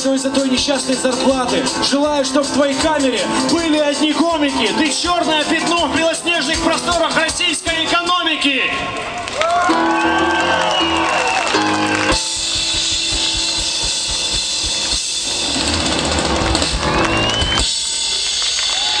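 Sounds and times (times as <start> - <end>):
live band playing: 0.0 - 8.9, 9.6 - 19.0
rising glide: 10.4 - 18.4.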